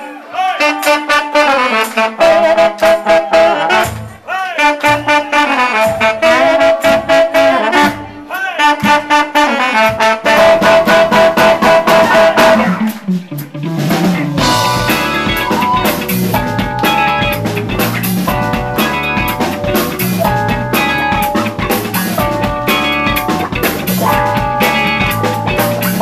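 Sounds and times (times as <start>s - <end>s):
horn section playing melody: 0.4s - 13.1s, 14.4s - 17.6s
steady drum beat: 1.9s - 26.0s.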